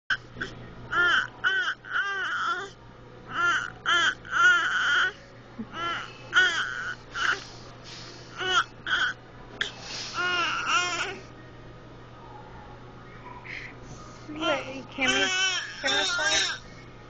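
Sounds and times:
baby babbling: 0:05.8 - 0:07.4, 0:15.1 - 0:16.6.

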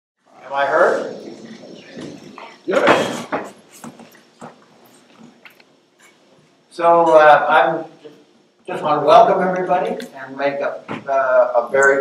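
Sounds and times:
quiet room hiss: 0:00.3 - 0:12.0
faint knocks and rustles: 0:01.1 - 0:06.6.

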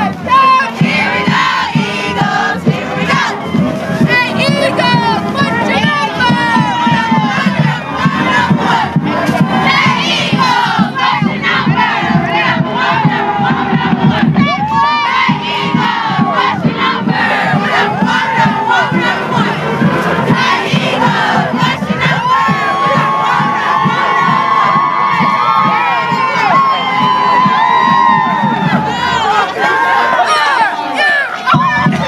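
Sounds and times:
crowd cheering and shouting: 0:00.0 - 0:32.0
long held shout: 0:22.0 - 0:32.0
high screams and whoops: 0:22.2 - 0:31.9.

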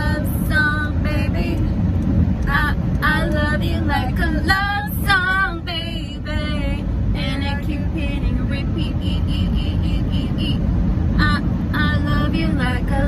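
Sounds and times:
low road rumble: 0:00.0 - 0:13.0
women singing along: 0:02.5 - 0:10.6.

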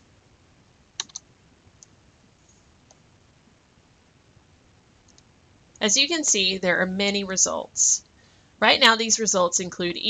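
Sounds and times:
computer mouse clicks: 0:01.0 - 0:02.0, 0:05.0 - 0:05.3
woman speaking: 0:05.8 - 0:08.0, 0:08.6 - 0:10.0.

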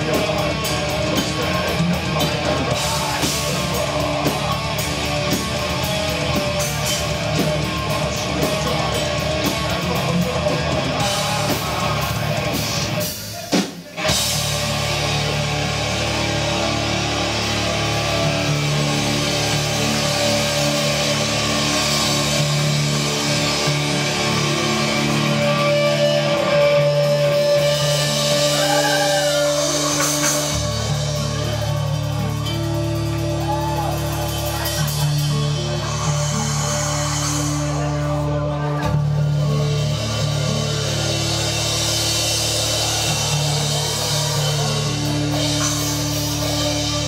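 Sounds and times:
distorted electric guitars: 0:00.0 - 0:47.0
metal band playing: 0:00.0 - 0:47.0.

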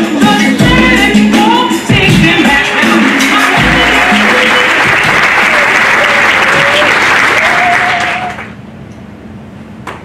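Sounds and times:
audience applauding: 0:02.6 - 0:08.6.

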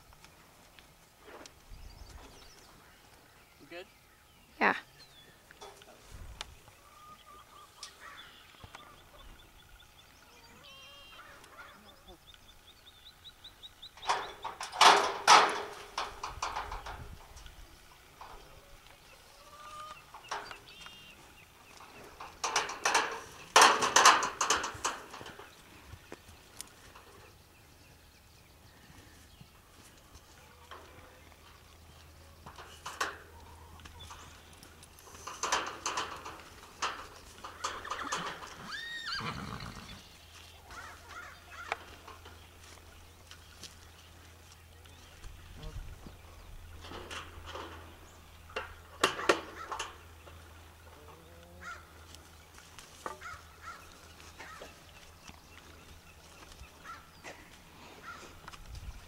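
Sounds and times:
metal gate rattling and clanking: 0:13.9 - 0:17.4, 0:20.0 - 0:20.7, 0:21.8 - 0:25.6, 0:32.0 - 0:39.6, 0:46.5 - 0:50.8.

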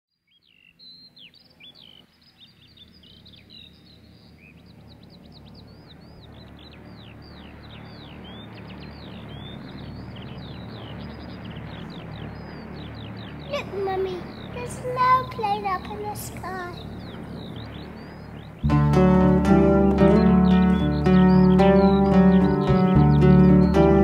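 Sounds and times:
recorded birdsong chirps: 0:00.1 - 0:24.0
low drone: 0:01.6 - 0:24.0.

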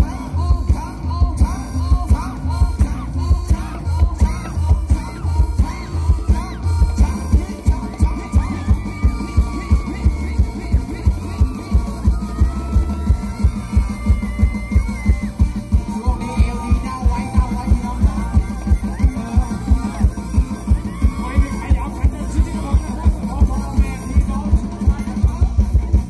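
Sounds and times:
bass drum beat: 0:00.0 - 0:26.0
live band dance music: 0:00.0 - 0:26.0.

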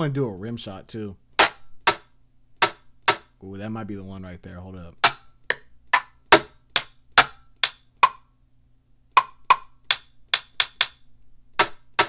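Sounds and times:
rim shot drum clicks: 0:09.2 - 0:11.0.

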